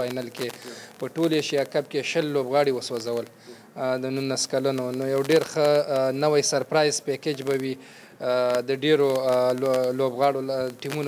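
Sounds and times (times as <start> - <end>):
man speaking: 0.0 - 11.0.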